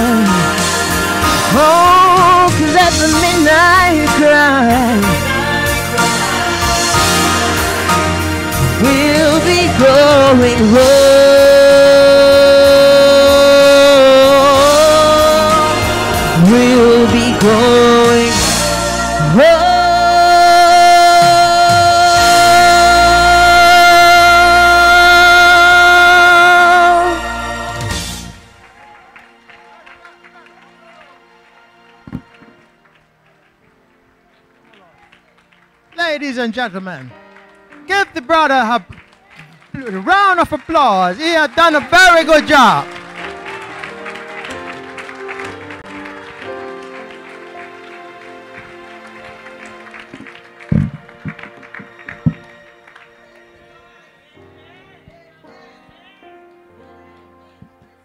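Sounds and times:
man singing a long high note: 0.0 - 27.6
congregation applauding: 0.0 - 55.4.

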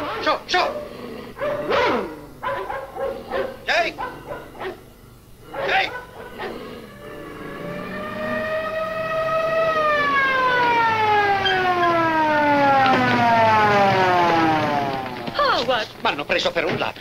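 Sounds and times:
mechanical police siren: 3.6 - 15.4.

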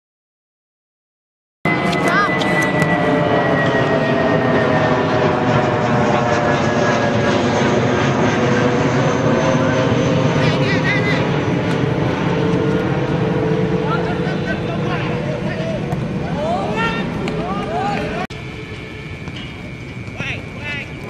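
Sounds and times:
engine drone: 1.7 - 21.0
voices calling: 12.8 - 21.0.

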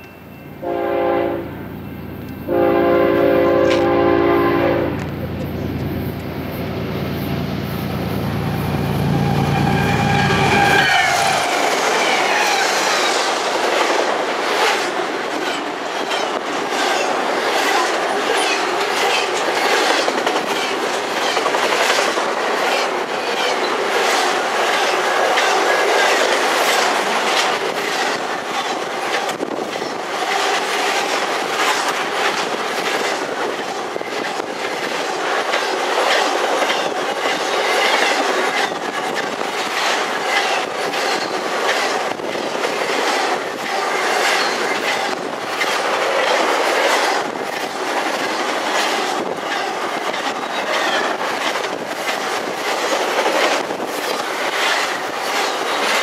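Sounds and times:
steel wheels rolling on rail: 0.0 - 56.0
wheels clacking over rail joints: 9.2 - 56.0.

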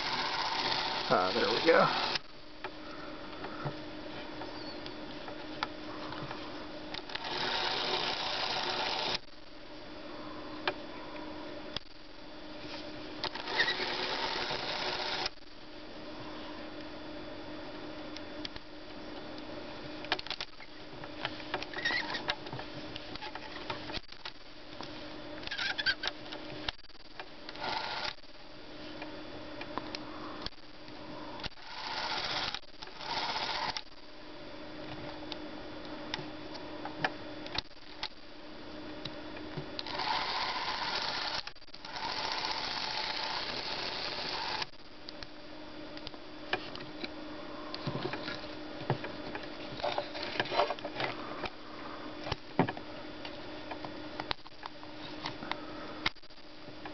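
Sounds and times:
clockwork camera motor whirring: 0.0 - 2.3, 6.9 - 9.3, 13.2 - 15.4, 27.5 - 28.3, 31.4 - 34.0, 39.8 - 44.8.

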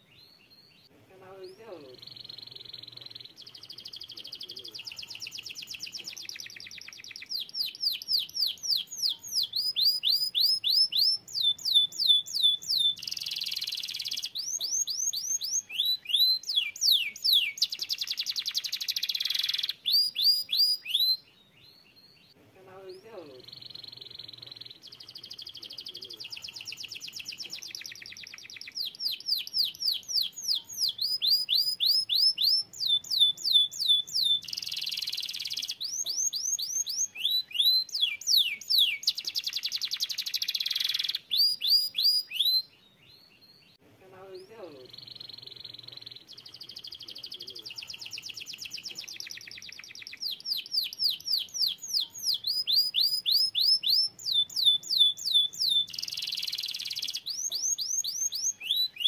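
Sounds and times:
canary singing: 0.0 - 59.0.

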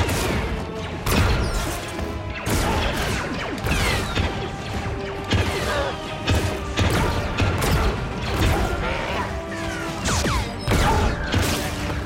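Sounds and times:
film background score: 0.0 - 12.0.

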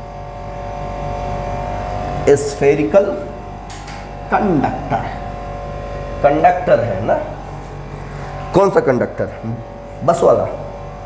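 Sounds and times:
machine-like hum: 0.0 - 11.0.

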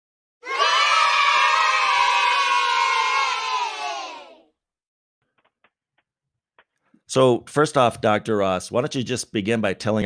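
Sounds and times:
crowd shouting and cheering: 0.4 - 4.5.

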